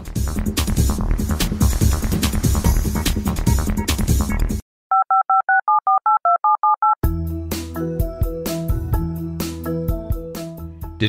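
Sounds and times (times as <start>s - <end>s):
telephone keypad dialling beeps: 4.9s - 7.0s
piano and synth music: 7.0s - 11.0s.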